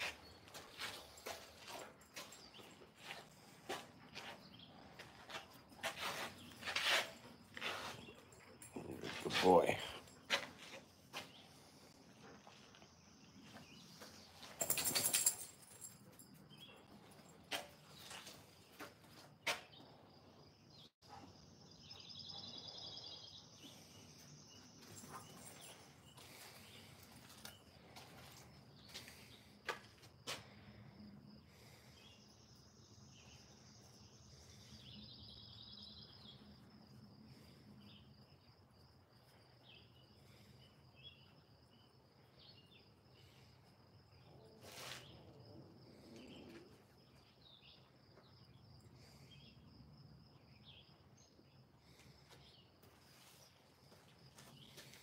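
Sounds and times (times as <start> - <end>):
puppy moving on concrete floor: 0.0 - 20.0.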